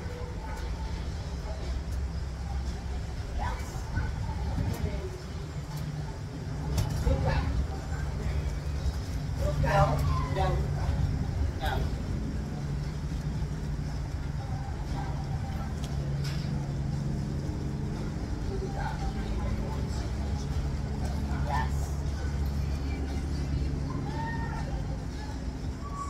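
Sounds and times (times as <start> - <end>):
low mechanical hum: 0.0 - 26.0.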